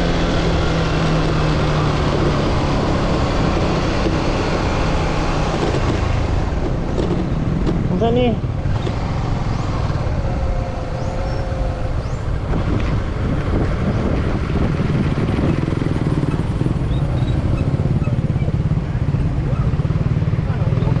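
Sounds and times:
motorcycle engine at low speed: 0.0s - 21.0s.

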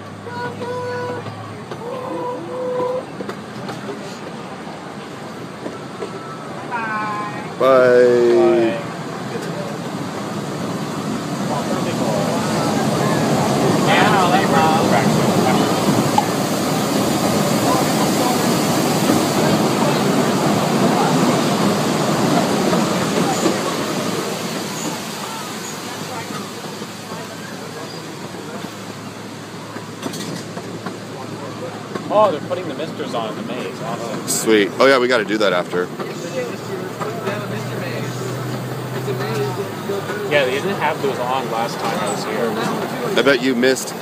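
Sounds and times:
small train rolling on track: 0.0s - 44.0s.

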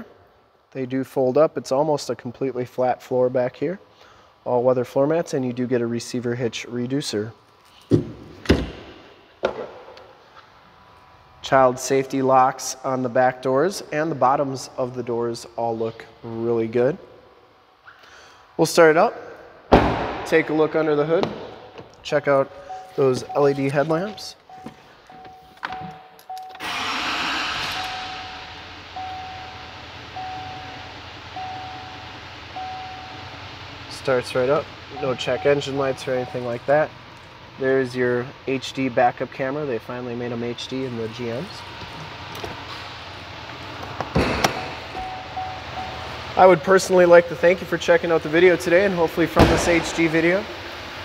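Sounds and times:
door-open warning chime: 22.4s - 26.7s, 27.6s - 33.3s, 34.9s - 36.6s, 44.9s - 46.8s
diesel engine starting and idling: 26.4s - 51.0s.

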